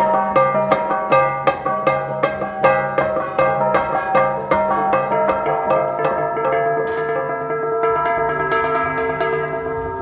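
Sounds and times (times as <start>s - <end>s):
bronze gongs struck in rhythm: 0.0s - 10.0s.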